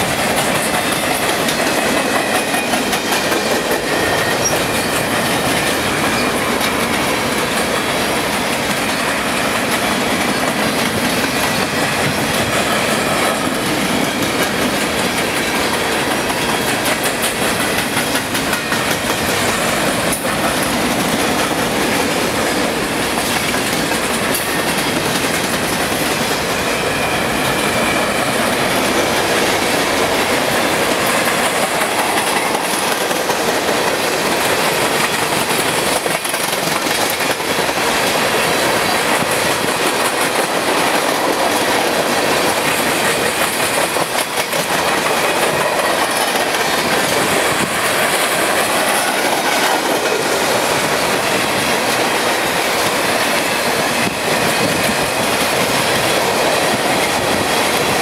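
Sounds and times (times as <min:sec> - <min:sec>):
freight train cars rolling past: 0:00.0 - 0:58.0
wheels clickety-clack over rail joints: 0:00.0 - 0:58.0.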